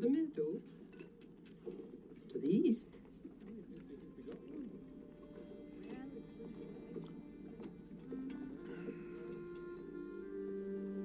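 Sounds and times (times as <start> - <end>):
soft sustained music: 2.8 - 11.0
birds cooing: 4.2 - 11.0.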